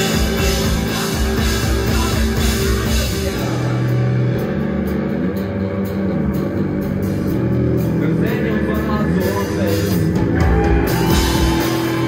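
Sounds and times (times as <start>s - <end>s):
bass guitar low notes: 0.0s - 12.0s
electric guitar: 0.0s - 12.0s
live rock band playing: 0.0s - 12.0s.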